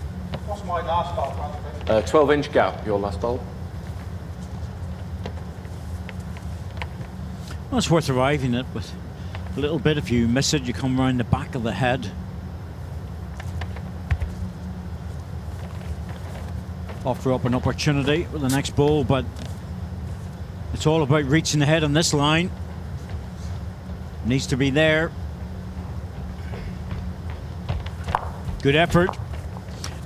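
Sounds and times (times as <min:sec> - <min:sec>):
steady low hall hum: 0:00.0 - 0:30.0.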